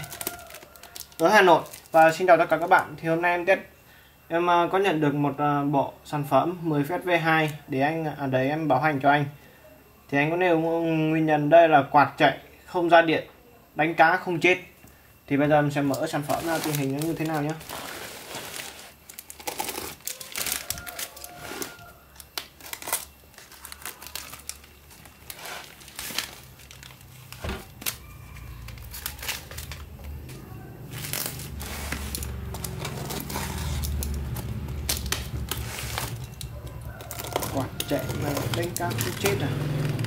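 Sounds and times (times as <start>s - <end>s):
plastic wrapping crinkling and tearing: 0.0s - 2.8s, 15.9s - 40.0s.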